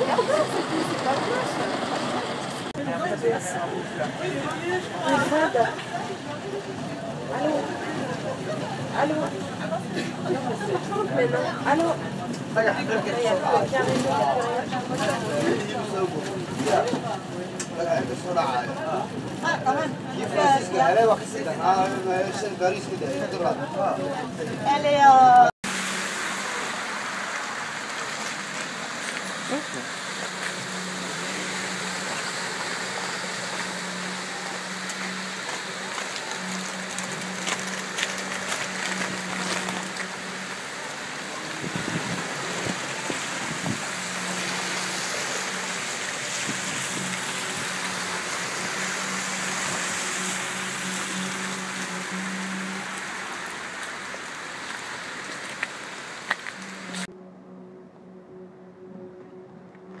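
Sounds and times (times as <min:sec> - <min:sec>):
tyres hissing through water: 0:00.0 - 0:22.8, 0:25.6 - 0:57.1
water rushing: 0:00.0 - 0:57.1
low engine hum: 0:25.7 - 1:00.0.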